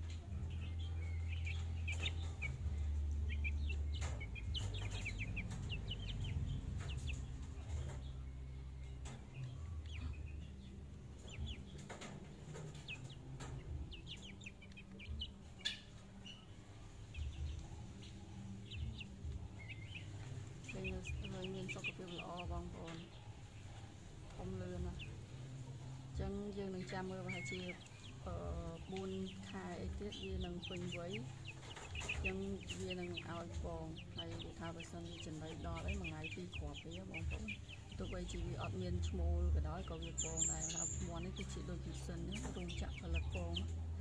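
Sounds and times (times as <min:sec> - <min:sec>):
chicks peeping and chirping: 0:00.0 - 0:44.0.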